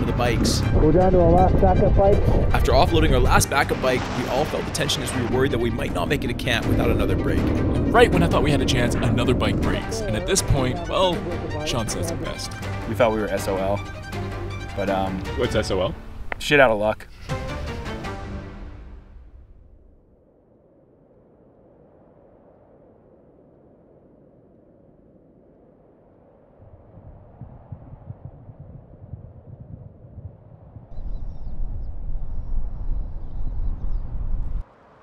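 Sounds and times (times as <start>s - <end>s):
wind buffeting microphone: 0.0s - 13.4s, 26.4s - 34.6s.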